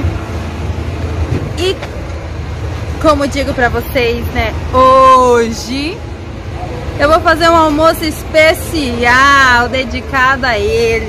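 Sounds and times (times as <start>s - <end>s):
rumble of trucks: 0.0s - 11.0s.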